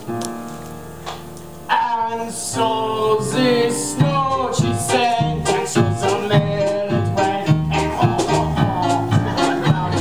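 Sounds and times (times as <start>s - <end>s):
upbeat musical theatre accompaniment: 0.0s - 10.0s.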